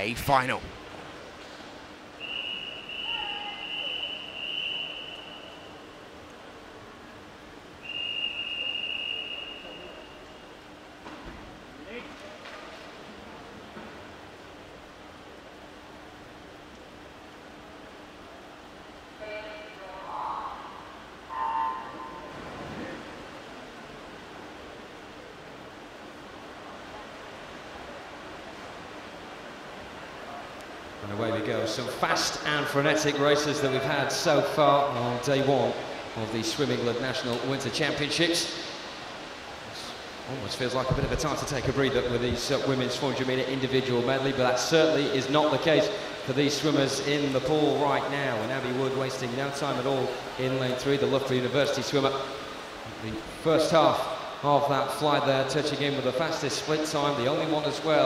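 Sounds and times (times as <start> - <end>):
indoor pool hall noise: 0.0 - 58.0
long high whistle blasts: 2.2 - 5.9, 7.8 - 10.6, 19.2 - 22.4.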